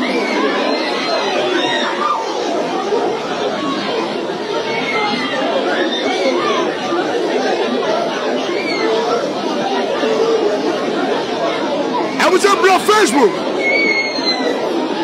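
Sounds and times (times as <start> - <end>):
crowd chatter: 11.2 - 13.7.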